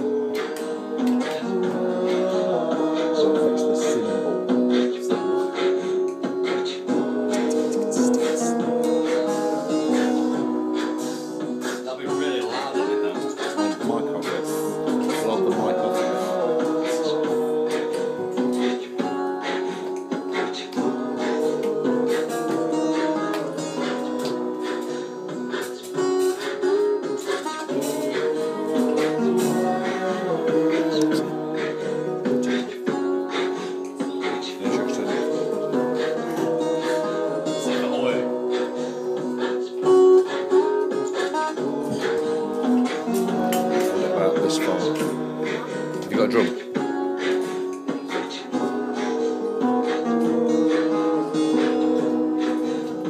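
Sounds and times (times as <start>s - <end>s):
layered looped guitar: 0.0s - 53.0s.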